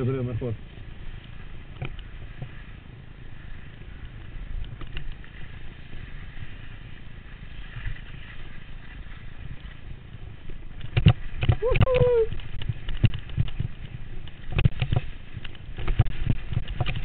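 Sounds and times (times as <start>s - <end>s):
skis scraping over snow: 0.0s - 17.0s
wind noise on microphone: 0.0s - 17.0s.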